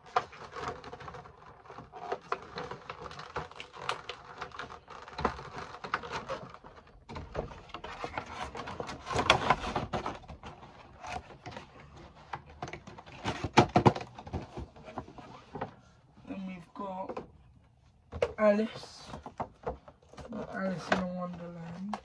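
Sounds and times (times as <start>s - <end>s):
cardboard boxes rustling and scraping: 0.0s - 17.1s.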